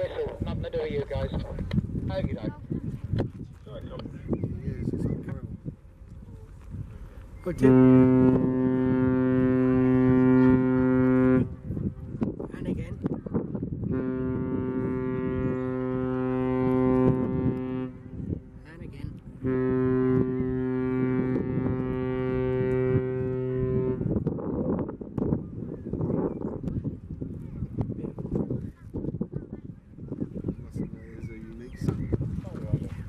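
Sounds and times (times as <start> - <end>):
ship's whistle blasts: 7.4 - 11.6, 13.9 - 18.2, 19.4 - 24.1.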